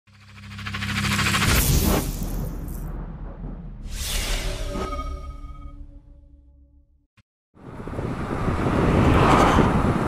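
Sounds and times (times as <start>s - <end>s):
fast-pulsing riser: 0.1s - 5.6s
whoosh: 0.1s - 5.9s
deep rumbling boom: 1.7s - 3.9s.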